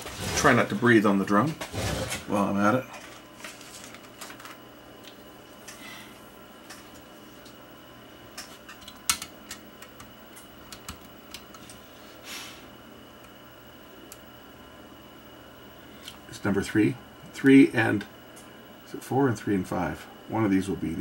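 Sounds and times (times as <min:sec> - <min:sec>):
faint high whine: 0:10.2 - 0:21.0.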